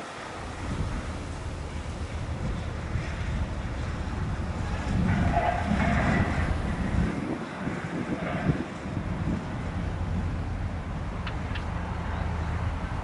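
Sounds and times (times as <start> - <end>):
wind buffeting microphone: 0.1 - 13.0.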